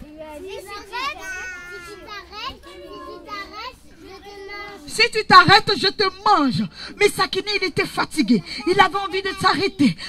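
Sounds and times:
children calling out: 0:00.0 - 0:04.9, 0:07.5 - 0:10.0.

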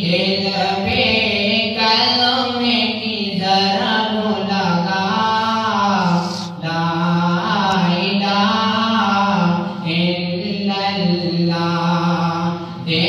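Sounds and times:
man singing unaccompanied: 0:00.0 - 0:13.0
singer breathing: 0:06.0 - 0:06.6.

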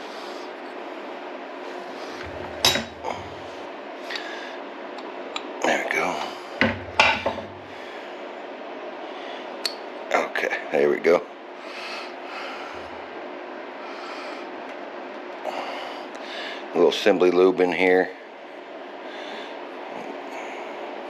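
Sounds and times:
faint steady hum: 0:00.0 - 0:21.0
metal parts rubbing: 0:02.2 - 0:03.6.

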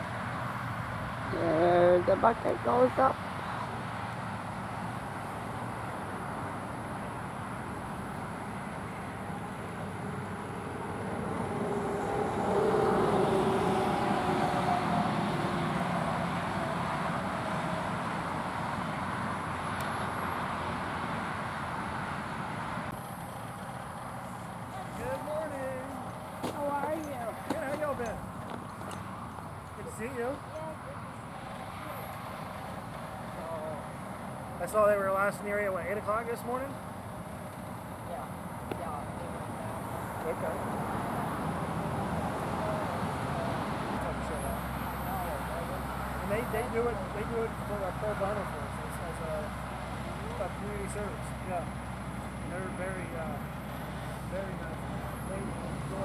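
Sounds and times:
truck engine running: 0:00.0 - 0:56.0
distant voices talking: 0:23.6 - 0:34.0, 0:38.0 - 0:56.0.

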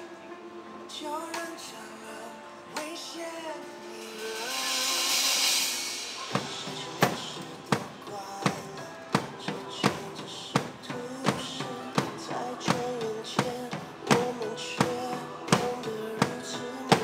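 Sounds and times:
pop backing track: 0:00.0 - 0:17.0
hiss-like wash: 0:03.8 - 0:07.4
sharp drum hits: 0:04.4 - 0:17.0.

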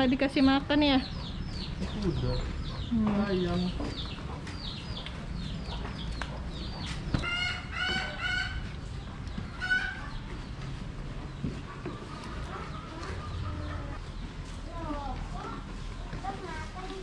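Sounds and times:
chicken calls: 0:00.9 - 0:15.6.

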